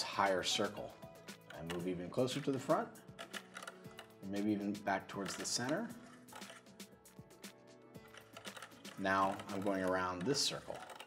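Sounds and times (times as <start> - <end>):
small clicks and clattering: 1.3 - 4.2, 5.2 - 6.7, 8.0 - 11.0.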